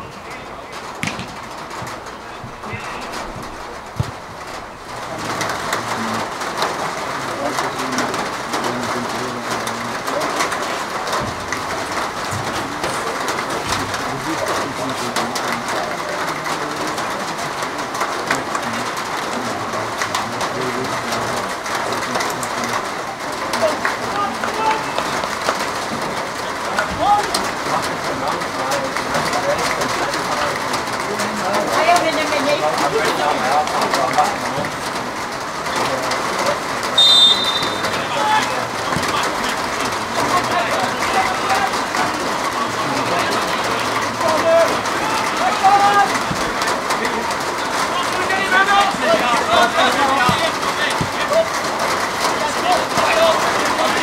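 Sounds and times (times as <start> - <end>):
indistinct voices: 0.0 - 54.0.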